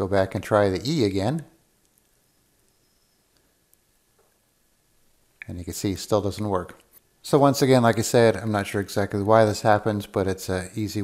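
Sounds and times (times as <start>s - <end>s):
faint mouse clicks: 1.8s - 4.4s.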